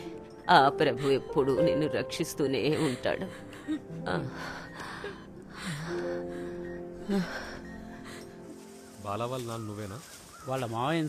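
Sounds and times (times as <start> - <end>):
woman sobbing: 0.0 - 8.8
soft background music: 0.0 - 11.0.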